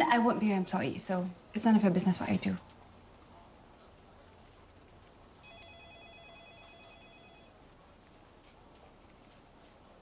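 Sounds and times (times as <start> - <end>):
faint steady high tone: 5.4 - 7.6.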